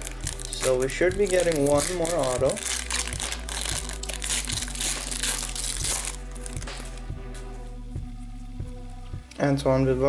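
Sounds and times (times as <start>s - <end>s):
foil wrapper crinkling: 0.0s - 7.0s
faint background music: 0.0s - 10.0s.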